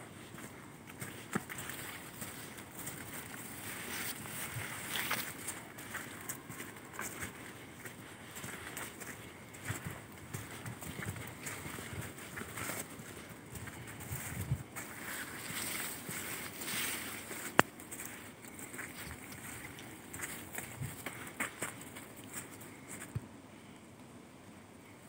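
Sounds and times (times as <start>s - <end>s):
footsteps on forest path: 0.0s - 23.3s
weeds rustling against body: 0.1s - 23.1s.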